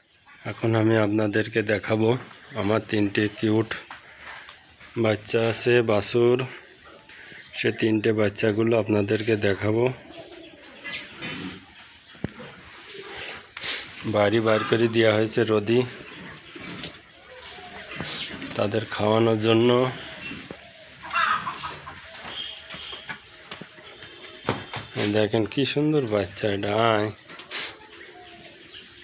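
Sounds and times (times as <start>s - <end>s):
faint bird chirps: 0.0s - 29.0s
man speaking: 14.0s - 16.0s, 18.5s - 20.2s
bird squawk: 20.1s - 23.2s.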